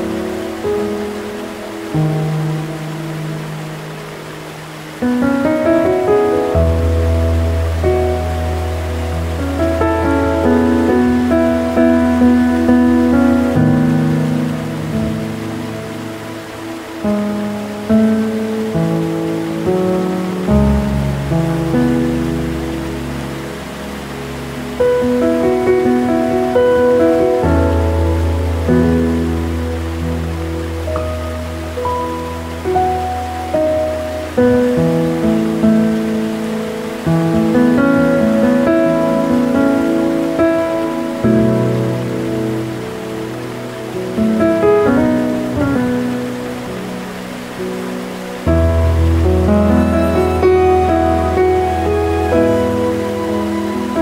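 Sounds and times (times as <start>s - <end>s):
gentle piano music: 0.0s - 54.0s
waterfall rushing: 0.0s - 54.0s.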